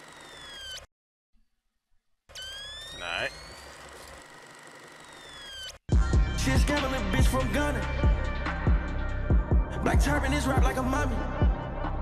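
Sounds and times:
rap song: 5.9s - 12.0s.

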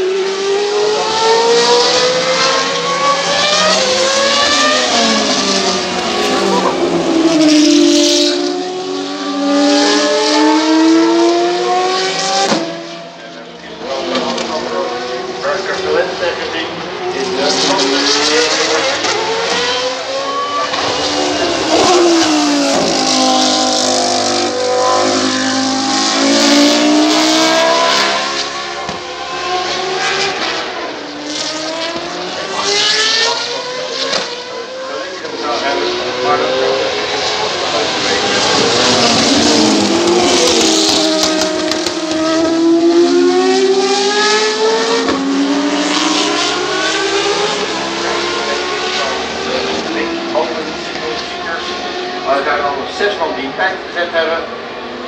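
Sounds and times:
racing car engines revving: 0.0s - 55.0s.

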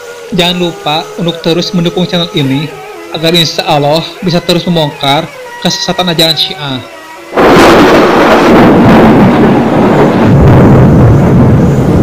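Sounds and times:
thunder-like rumbling roar: 7.3s - 12.0s.

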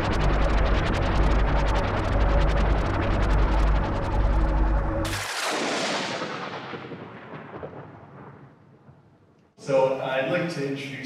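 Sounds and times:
rushing noise of crash: 0.0s - 9.0s.

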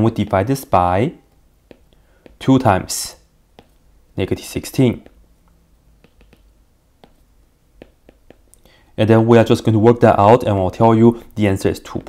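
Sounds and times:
stylus tapping on tablet screen: 1.6s - 3.9s, 4.6s - 8.6s
short breath: 1.9s - 2.4s, 8.6s - 9.0s.

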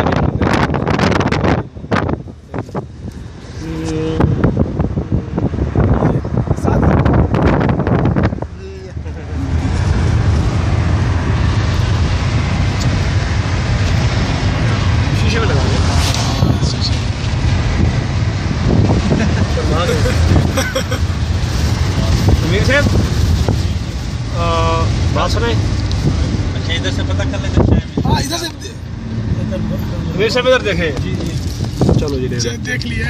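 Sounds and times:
wind buffeting microphone: 0.0s - 8.7s, 9.4s - 26.6s, 27.4s - 33.0s
road and engine rumble: 0.0s - 33.0s.

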